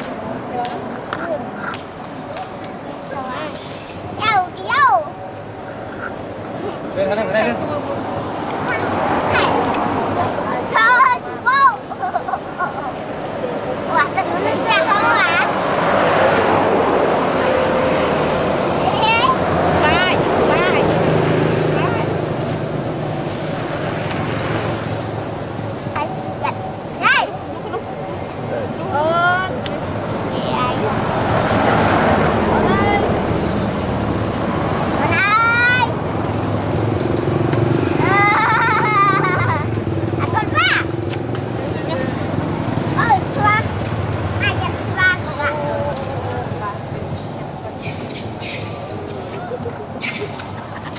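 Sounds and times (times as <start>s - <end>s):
indistinct voices: 0.0s - 50.9s
monkeys squeaking: 47.0s - 50.9s
high warbling calls: 47.1s - 49.3s, 49.9s - 50.9s.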